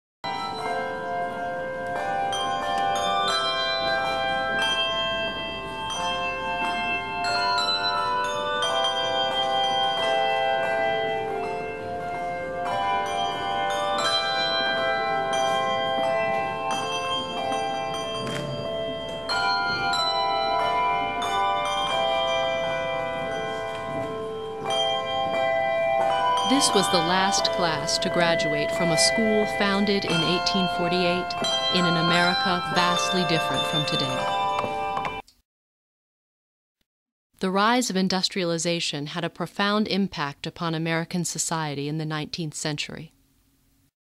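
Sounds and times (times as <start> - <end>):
bell melody: 0.2 - 35.2.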